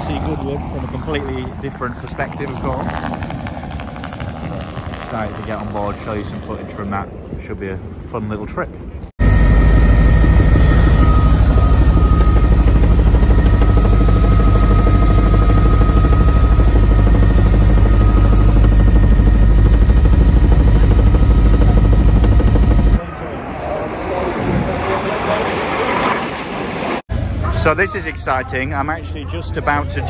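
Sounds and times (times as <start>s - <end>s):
helicopter engine and rotor drone: 0.0s - 7.7s, 8.8s - 23.8s
thin steady whine: 8.8s - 23.0s.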